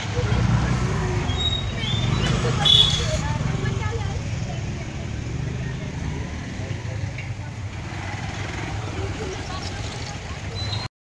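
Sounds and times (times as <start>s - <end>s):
people talking: 0.0s - 10.9s
vehicle engine rumbling: 0.0s - 10.9s.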